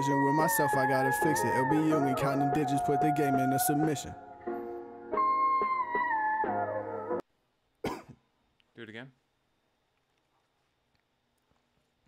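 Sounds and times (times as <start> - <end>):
man coughing: 7.8 - 8.2.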